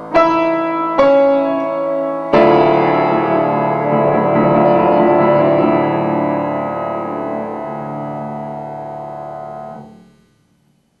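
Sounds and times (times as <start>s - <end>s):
upright piano chord: 0.0s - 10.3s.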